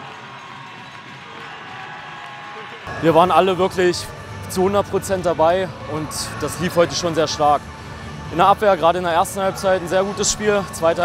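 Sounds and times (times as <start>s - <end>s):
crowd cheering and clapping: 0.0s - 3.6s.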